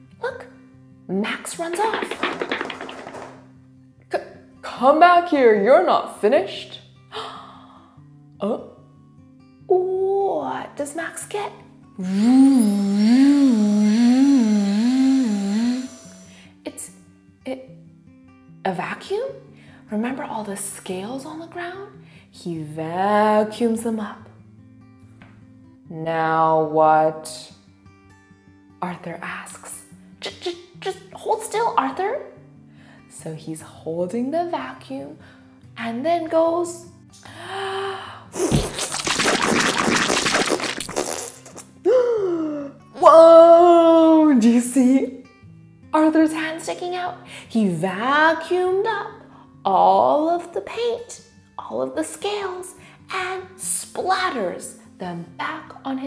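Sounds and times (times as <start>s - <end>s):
soft background music: 3.4s - 12.1s, 15.6s - 38.3s, 41.8s - 56.0s
woman making vocal sound effects: 12.0s - 16.3s, 38.4s - 43.4s
woman humming wavering tone: 12.0s - 16.4s.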